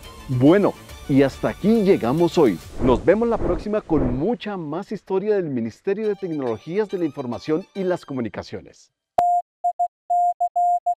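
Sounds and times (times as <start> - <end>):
morse code beeps: 9.2 - 11.0.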